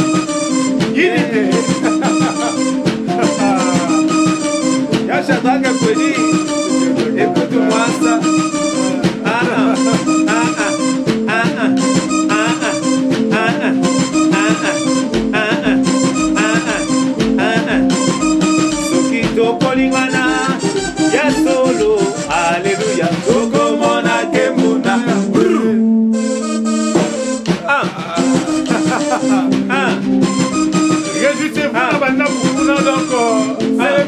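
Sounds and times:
percussion beat: 0:00.0 - 0:25.7, 0:26.4 - 0:34.0
keyboard chords: 0:00.0 - 0:34.0
live gospel band playing: 0:00.0 - 0:34.0.

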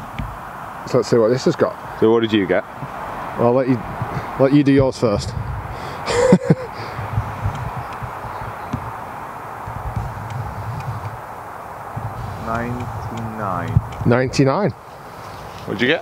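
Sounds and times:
wind on microphone: 0:00.0 - 0:16.0
man murmuring: 0:05.9 - 0:06.9
short laugh: 0:06.0 - 0:07.0.

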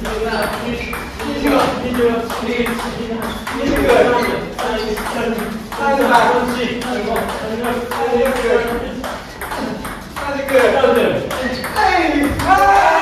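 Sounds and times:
table tennis ball hits: 0:00.4 - 0:13.0
players shouting: 0:11.5 - 0:13.0.

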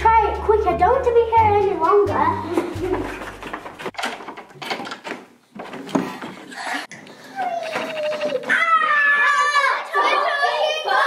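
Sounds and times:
background music: 0:00.0 - 0:03.9
footsteps on hard floor: 0:00.4 - 0:04.0
sharp clicks and knocks: 0:03.4 - 0:06.4.

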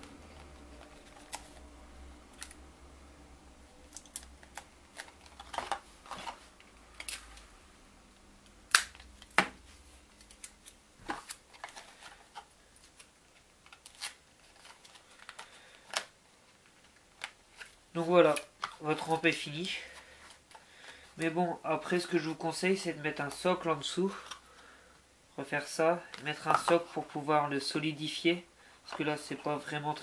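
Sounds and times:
cardboard crinkling: 0:03.9 - 0:07.3, 0:10.2 - 0:16.0.

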